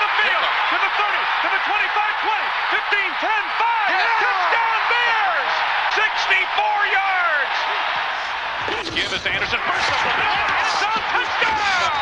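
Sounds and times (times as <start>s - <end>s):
excited announcer calling play: 0.0s - 7.9s, 9.0s - 12.0s
stadium crowd cheering: 0.0s - 12.0s.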